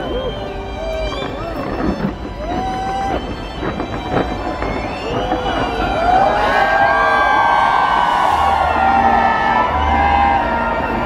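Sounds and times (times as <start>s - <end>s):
crowd shouting and cheering: 0.0s - 11.0s
fireworks bangs: 0.0s - 11.0s
music: 0.0s - 11.0s.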